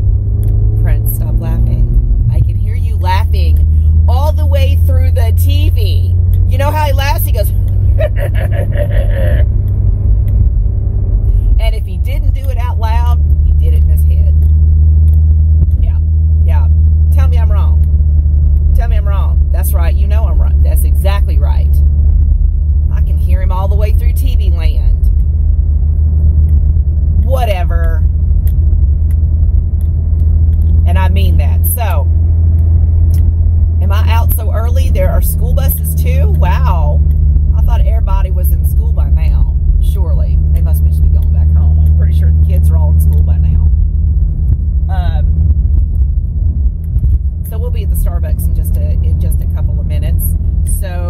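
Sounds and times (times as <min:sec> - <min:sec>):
car road and engine rumble: 0:00.0 - 0:51.0.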